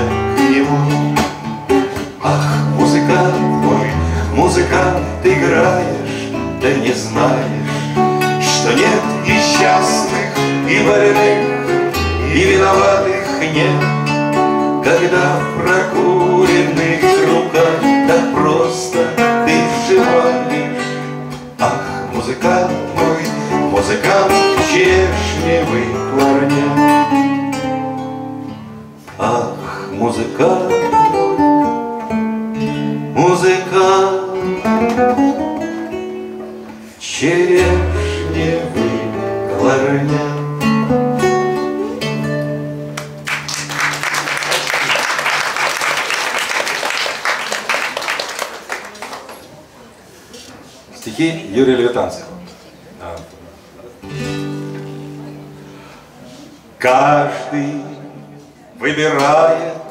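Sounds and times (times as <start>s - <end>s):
man singing: 0.0s - 27.6s, 29.0s - 31.5s, 32.6s - 36.1s, 36.9s - 42.4s, 56.8s - 59.9s
classical guitars playing: 0.0s - 46.4s, 52.4s - 59.9s
audience applause: 43.0s - 49.7s.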